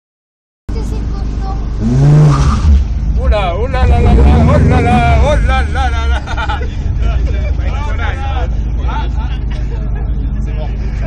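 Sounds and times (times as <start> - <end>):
car engine revving hard: 1.7 - 7.9
man's excited voice: 3.2 - 6.3.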